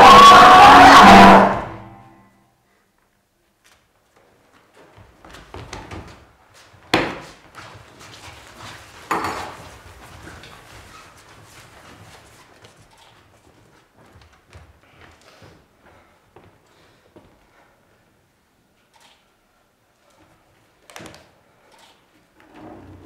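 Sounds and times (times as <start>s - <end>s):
loud thumps ringing in hall: 0.0s - 2.1s
soft knocks and shuffles: 3.0s - 18.2s
scuffling on wooden stage: 3.4s - 18.1s.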